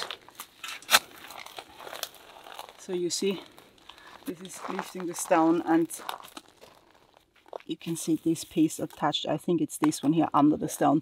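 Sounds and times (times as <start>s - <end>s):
spade crunching into gravelly soil: 0.0s - 4.0s.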